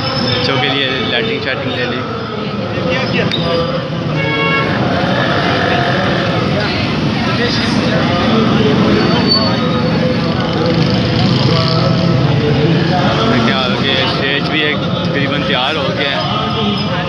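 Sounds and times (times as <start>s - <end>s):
chatter of many voices: 0.0s - 17.0s
vehicle and motorcycle noise: 0.0s - 17.0s
short horn toot: 4.1s - 4.8s.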